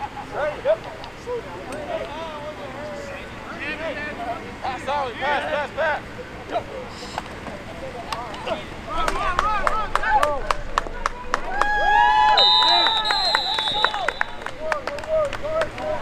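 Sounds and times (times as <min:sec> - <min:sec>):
people shouting: 0:08.4 - 0:16.0
referee's whistle blowing: 0:12.2 - 0:14.6.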